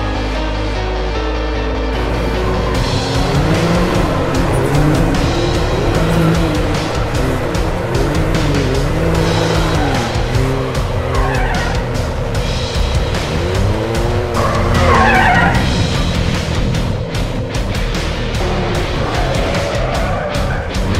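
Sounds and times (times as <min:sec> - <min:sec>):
background music: 0:00.0 - 0:20.9
vehicle engine revving: 0:01.8 - 0:20.9.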